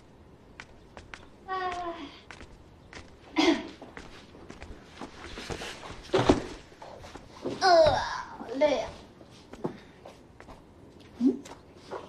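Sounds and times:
footsteps on a hard floor: 0.6s - 10.7s.

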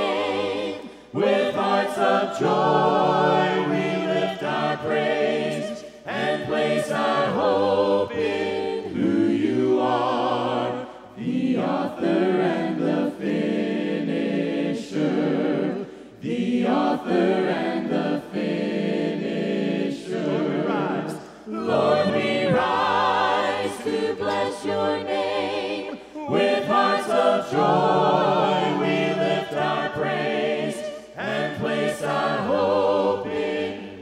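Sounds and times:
group singing a hymn a cappella: 0.0s - 34.0s.

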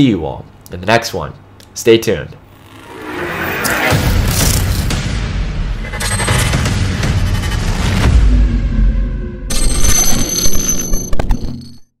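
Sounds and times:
glitchy stutters: 2.4s - 8.1s.

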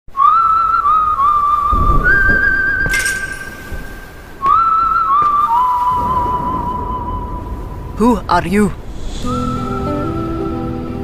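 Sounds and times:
slow whistled melody: 0.1s - 7.8s, 9.1s - 11.0s
short ringing hit: 2.9s - 4.1s
low rumble: 5.9s - 11.0s.

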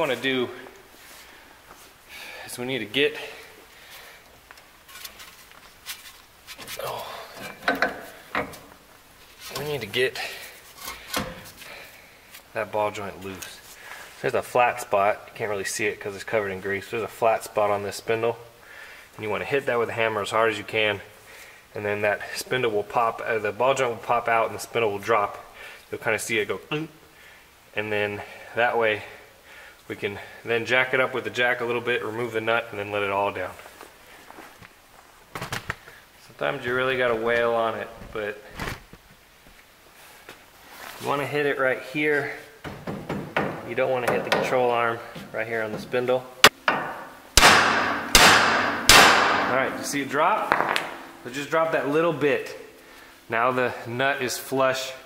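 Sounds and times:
knocks and clunks under car: 42.6s - 44.5s
hammer striking metal: 46.4s - 49.9s.

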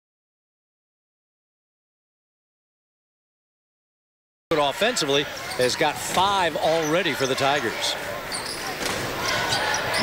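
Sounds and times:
crowd noise: 4.5s - 10.0s.

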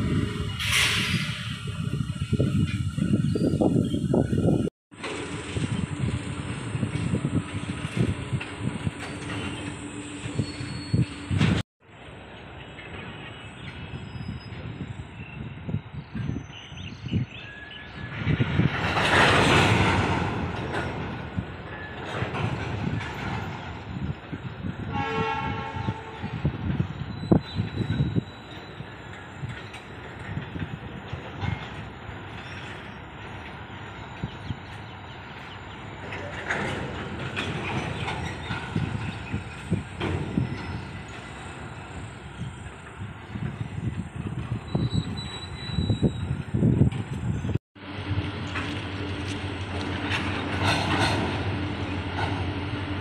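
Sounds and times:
train rumble and clatter: 0.0s - 53.0s
distant locomotive horn: 24.8s - 26.6s.

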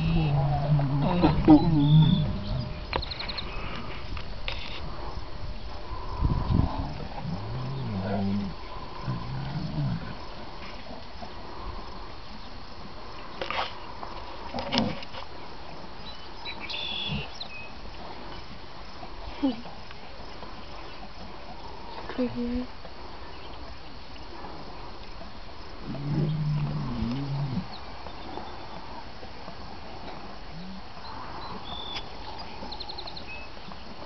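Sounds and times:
birds chirping: 0.0s - 4.2s, 16.0s - 17.9s, 30.6s - 33.9s
outdoor background noise: 0.0s - 34.0s.

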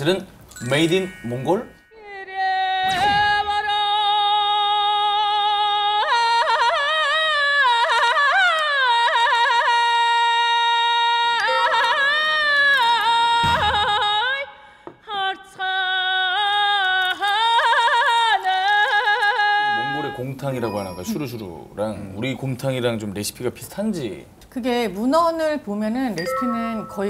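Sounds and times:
man speaking: 0.0s - 1.8s, 19.8s - 24.3s
background music: 26.1s - 27.0s.

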